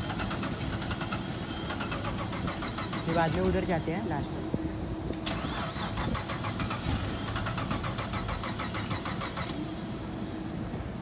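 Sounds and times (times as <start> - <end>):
engine starter cranking: 0.0 - 3.6, 5.2 - 9.7.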